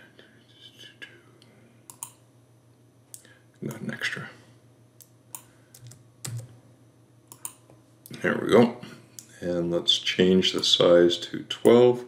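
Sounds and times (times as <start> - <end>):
computer mouse clicks: 1.9 - 2.2, 7.3 - 7.6.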